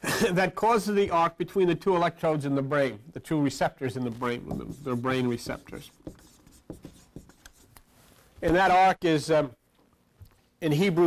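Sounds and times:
writing on paper scratching: 0:04.2 - 0:07.8.

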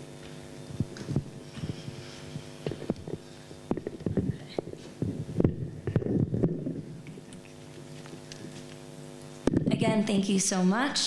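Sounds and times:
electrical hum: 0:00.0 - 0:11.0
microphone handling thumps: 0:00.2 - 0:07.0, 0:09.4 - 0:10.0.

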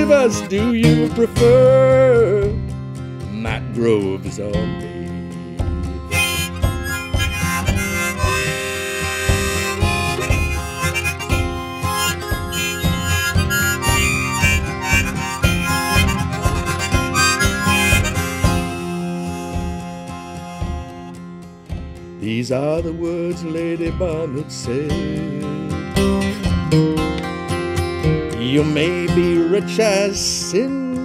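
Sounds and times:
harmonica melody: 0:00.0 - 0:02.3, 0:05.2 - 0:21.7, 0:24.1 - 0:31.0
picked acoustic guitar: 0:00.0 - 0:31.0.

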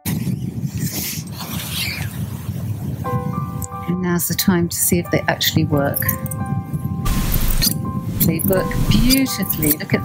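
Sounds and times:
wind and surf rumble: 0:00.0 - 0:10.0
surf hiss: 0:07.1 - 0:09.0.

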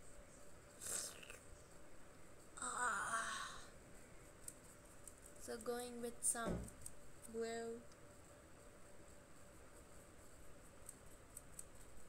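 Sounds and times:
girl sighing: 0:02.6 - 0:03.7.

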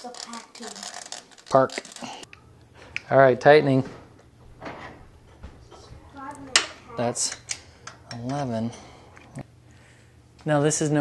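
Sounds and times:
low workshop sound: 0:00.0 - 0:09.6.

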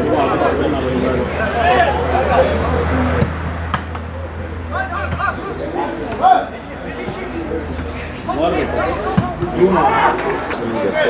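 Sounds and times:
players shouting calls: 0:00.0 - 0:11.0.

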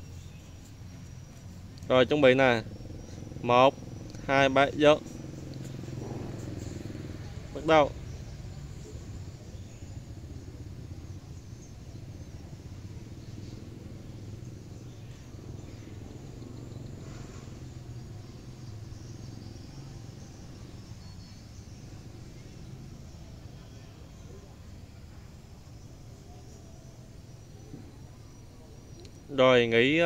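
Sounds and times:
distant road traffic rumble: 0:00.0 - 0:30.0
faint passing vehicles: 0:00.0 - 0:30.0.

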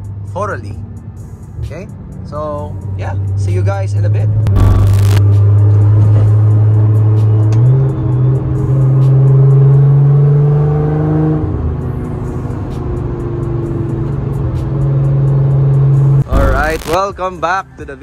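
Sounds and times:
car engine droning from cabin: 0:04.5 - 0:08.4.

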